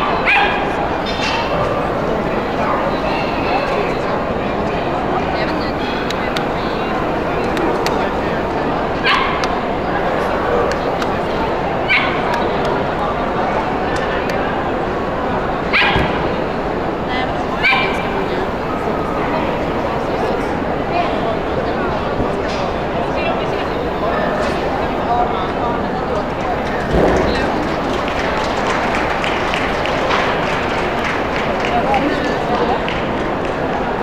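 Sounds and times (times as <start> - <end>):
crowd murmur: 0.0 - 34.0.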